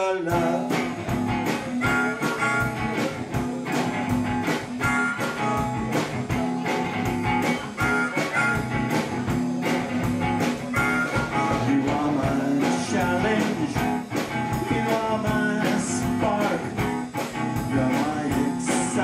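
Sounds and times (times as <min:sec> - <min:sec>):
electric guitar: 0:00.0 - 0:19.0
steady drum beat: 0:00.3 - 0:19.0
blues harmonica wailing: 0:00.6 - 0:12.4.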